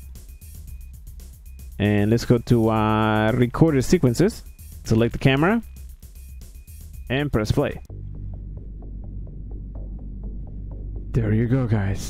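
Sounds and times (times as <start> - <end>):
electrical hum: 0.0 - 11.2.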